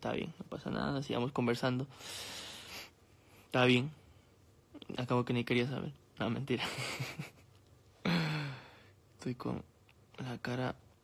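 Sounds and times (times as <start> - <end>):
man sighing: 8.0 - 8.9.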